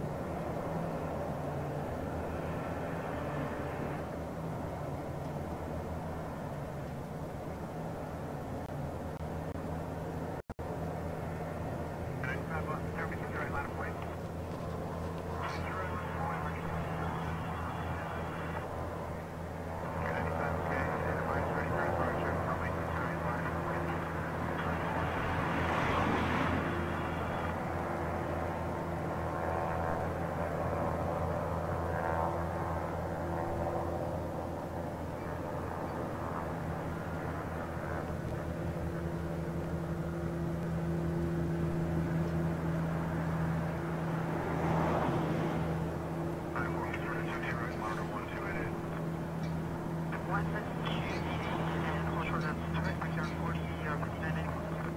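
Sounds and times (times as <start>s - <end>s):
jet engines idling: 0.0s - 54.9s.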